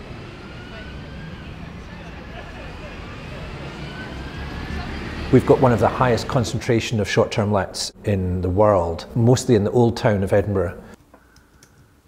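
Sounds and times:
faint rising whine: 0.0 - 6.6
bus engine driving past: 0.0 - 7.8
distant voices: 0.0 - 11.0.

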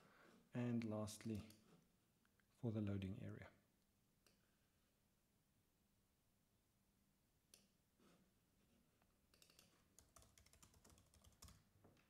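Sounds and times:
faint keyboard typing: 1.1 - 1.7, 9.3 - 12.0.

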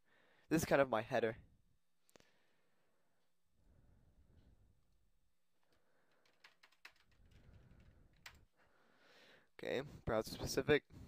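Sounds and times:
keyboard keystrokes: 6.1 - 7.6.

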